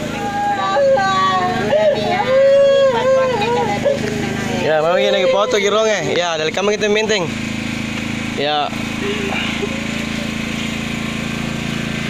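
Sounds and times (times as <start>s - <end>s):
steady low hum: 0.0s - 12.0s
woman wailing: 0.1s - 6.0s.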